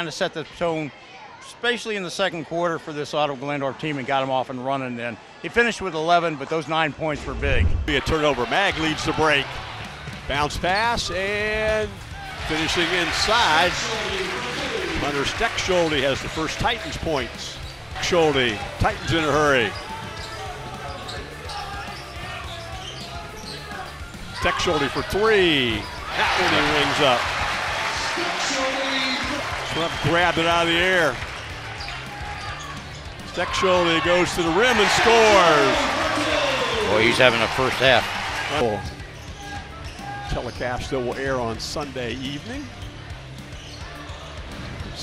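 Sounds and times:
gym crowd noise: 0:00.0 - 0:45.0
background music: 0:07.2 - 0:45.0.

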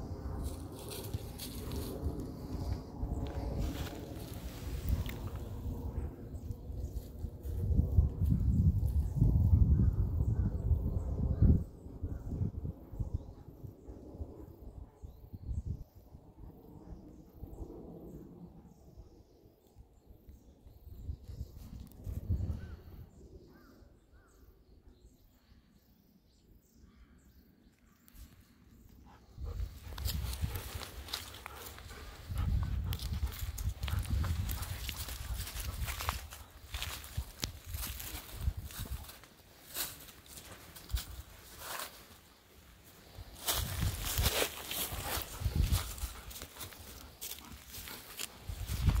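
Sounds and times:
footsteps crunching through dry leaves: 0:00.4 - 0:02.2, 0:29.6 - 0:49.0.

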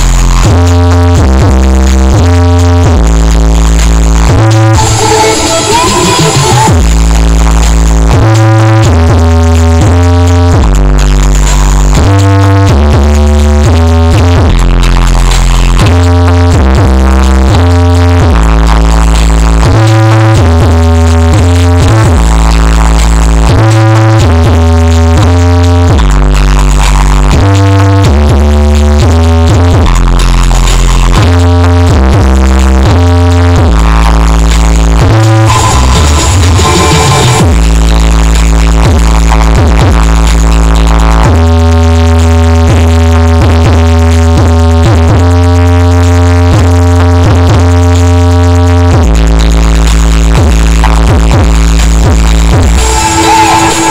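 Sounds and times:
heavy pounding bass line: 0:00.0 - 0:53.9
loud electronic dance music: 0:00.0 - 0:53.9.

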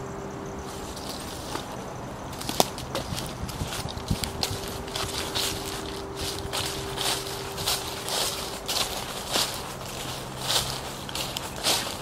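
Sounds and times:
footsteps on dry leaves: 0:00.3 - 0:12.0.

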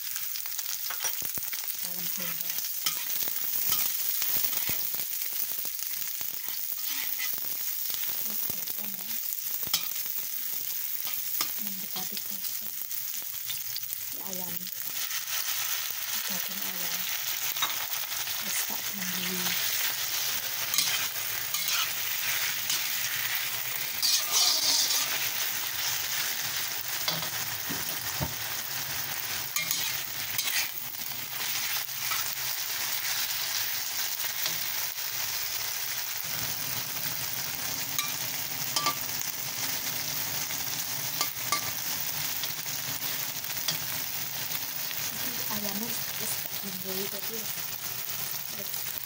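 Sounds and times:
food sizzling in hot oil: 0:00.0 - 0:49.0
metal spatula scraping wok: 0:02.8 - 0:04.9, 0:06.4 - 0:07.4, 0:19.5 - 0:28.0, 0:29.3 - 0:33.6, 0:38.0 - 0:39.2.

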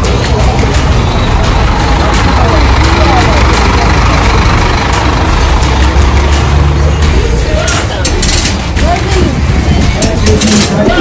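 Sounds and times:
bus engine rumbling: 0:00.0 - 0:11.0
crowd voices: 0:00.0 - 0:11.0.

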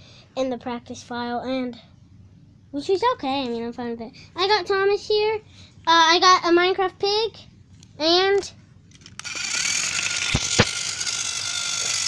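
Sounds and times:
sharp clicks: 0:08.9 - 0:12.0
toy train motor whirring: 0:08.9 - 0:12.0.

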